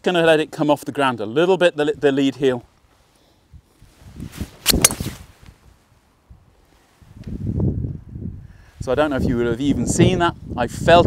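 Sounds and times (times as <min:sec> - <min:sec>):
wind rumble on microphone: 0:03.5 - 0:11.0
golf club swishing: 0:03.8 - 0:05.6
golf ball struck with a crack: 0:04.6 - 0:05.2.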